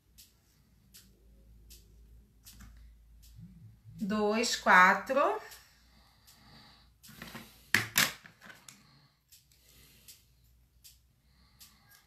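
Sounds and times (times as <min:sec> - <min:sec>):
faint ticks: 0:00.1 - 0:03.4, 0:05.5 - 0:07.2, 0:08.6 - 0:12.0.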